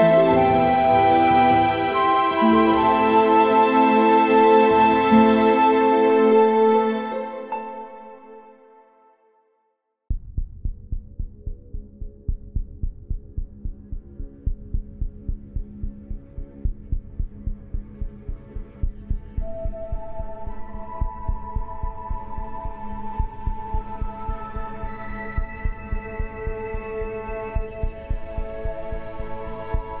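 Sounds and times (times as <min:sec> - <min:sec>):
long held melodic tones: 0:00.0 - 0:08.9
heartbeat-like thumping pulse: 0:10.1 - 0:30.0.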